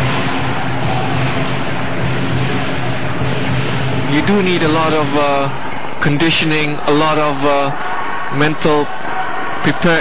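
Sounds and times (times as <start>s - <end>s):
crowd noise: 0.0s - 10.0s.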